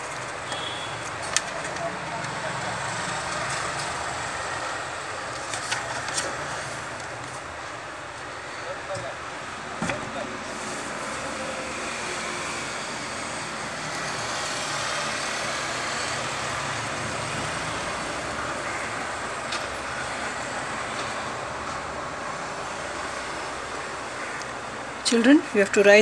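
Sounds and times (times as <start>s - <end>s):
road traffic: 0.0s - 26.0s.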